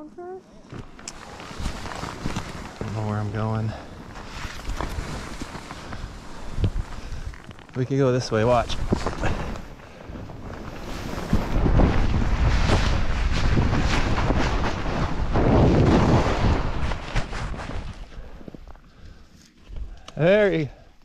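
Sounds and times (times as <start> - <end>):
skis sliding through snow: 1.1 - 18.4
wind buffeting microphone: 8.5 - 18.2.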